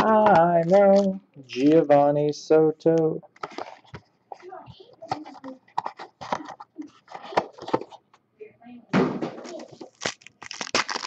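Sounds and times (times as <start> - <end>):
foil wrappers crinkling: 0.0 - 1.8, 9.5 - 11.0.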